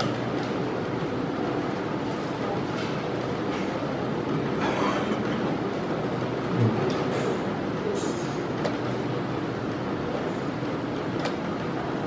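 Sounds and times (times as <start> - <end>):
busy indoor hall noise: 0.0 - 12.0.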